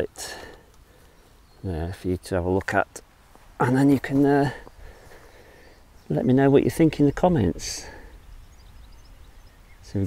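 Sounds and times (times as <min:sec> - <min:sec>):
faint bird chirps: 0:00.7 - 0:02.2, 0:04.6 - 0:10.0
man's voice: 0:03.6 - 0:04.7.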